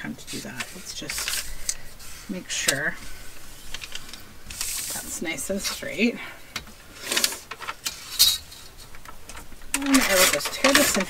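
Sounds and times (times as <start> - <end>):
paper rustling and scraping: 0.0 - 5.9, 6.9 - 11.0.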